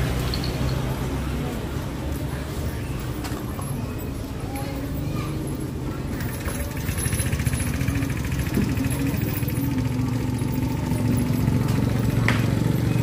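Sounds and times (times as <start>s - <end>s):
people talking: 0.6s - 13.0s
motorcycle engine running: 6.1s - 13.0s.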